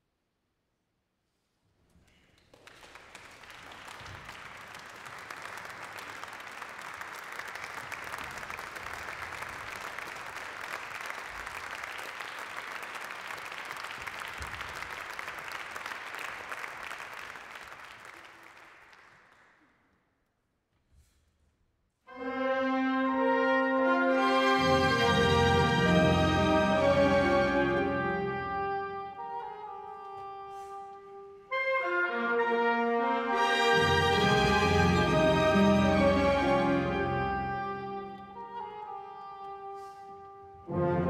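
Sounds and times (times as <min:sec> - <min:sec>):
audience applauding: 0:02.1 - 0:19.7
orchestra brass-led chord: 0:22.1 - 0:41.0.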